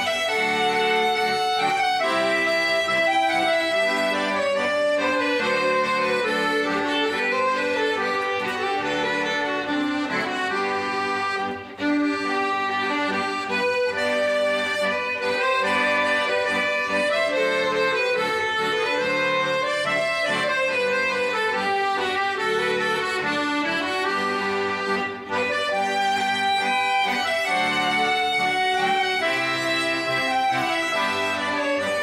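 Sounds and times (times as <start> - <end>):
accordion chords: 0.0 - 32.0
violin melody: 0.0 - 32.0.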